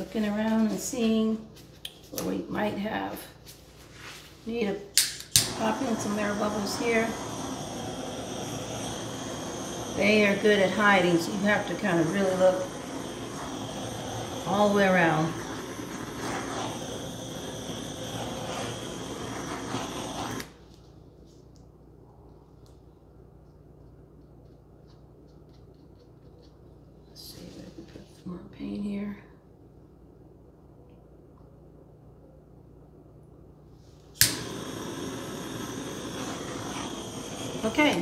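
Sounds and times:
butane torch hissing: 3.2 - 20.9, 33.8 - 38.0.

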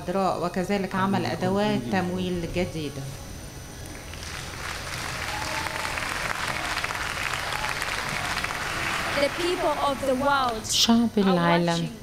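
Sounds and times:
audience applauding: 3.9 - 10.8.

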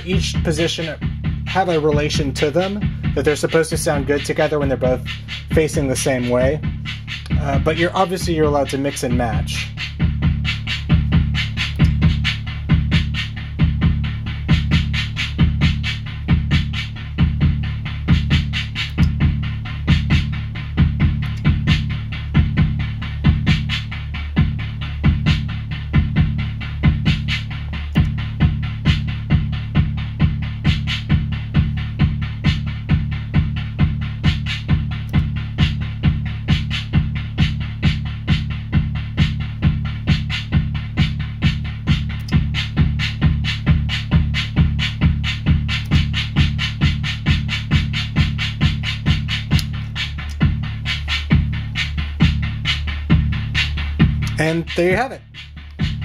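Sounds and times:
analog kick drum: 0.0 - 56.0
digital hi-hat ticking: 0.0 - 56.0
noise snare drum: 0.0 - 56.0.

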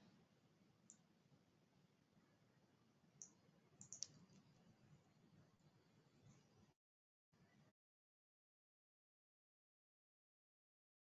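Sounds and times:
faint short clicks: 3.2 - 4.5.

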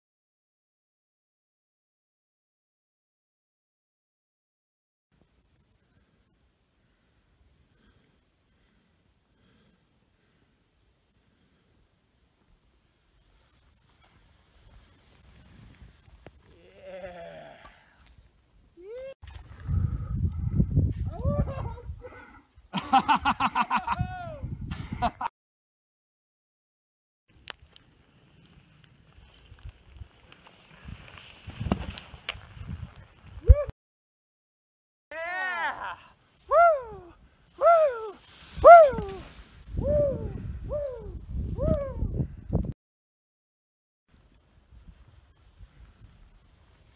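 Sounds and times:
skiing through deep powder snow: 6.8 - 16.8, 27.6 - 33.6, 36.0 - 41.6, 44.2 - 46.9
skier yelling: 18.8 - 19.2, 21.1 - 22.3, 23.8 - 24.5, 35.1 - 42.0
rising whoop: 35.2 - 42.1.

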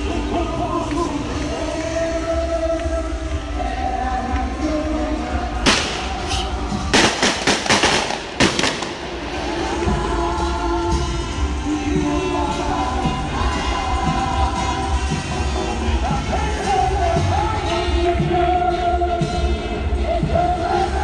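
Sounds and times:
hymn sung with music: 0.0 - 21.0
fireworks bangs: 5.6 - 9.9.

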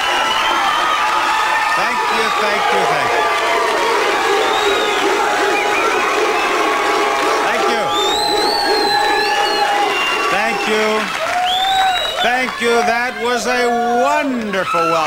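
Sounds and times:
high shrieks: 0.0 - 12.3
audience cheering and applauding: 0.0 - 15.0
crowd shouting: 0.0 - 15.0.

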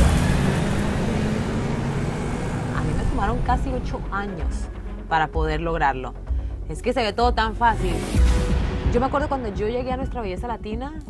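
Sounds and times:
city street traffic: 0.0 - 5.1
woman's voice: 2.7 - 11.0.

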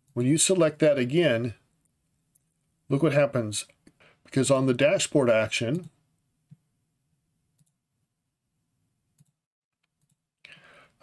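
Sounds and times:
faint computer mouse clicks: 7.6 - 7.8, 9.2 - 10.2.

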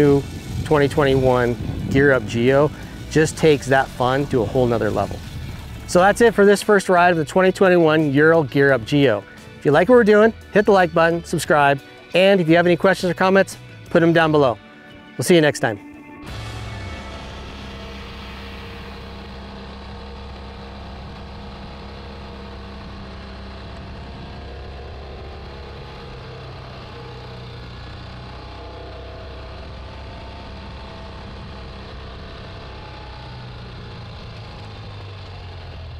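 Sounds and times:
motorcycle engine running: 0.0 - 35.9.

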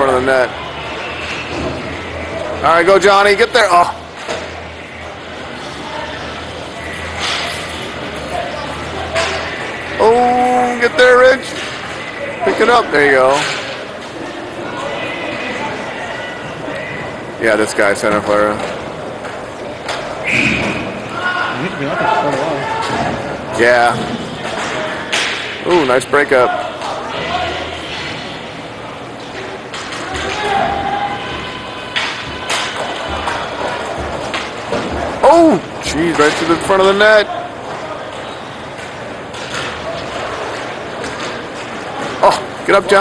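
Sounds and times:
hockey sticks and puck clatter: 7.0 - 8.0, 9.0 - 10.3, 11.4 - 14.3, 23.8 - 28.3, 29.2 - 43.0.

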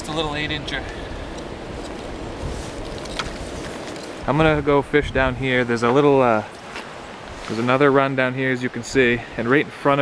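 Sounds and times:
wind buffeting microphone: 0.0 - 6.2
river water rushing: 0.0 - 10.0.

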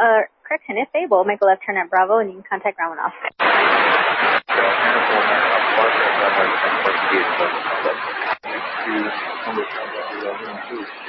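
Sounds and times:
faint garbled speech: 0.0 - 11.0
radio static hiss: 1.2 - 11.0.

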